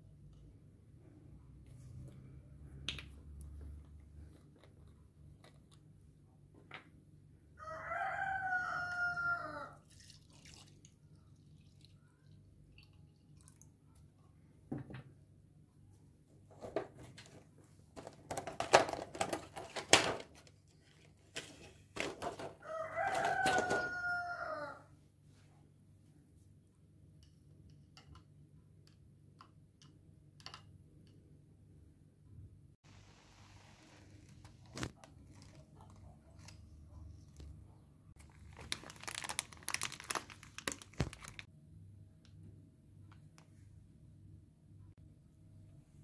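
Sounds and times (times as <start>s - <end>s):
rooster crowing: 7.6s - 9.8s, 22.6s - 24.9s.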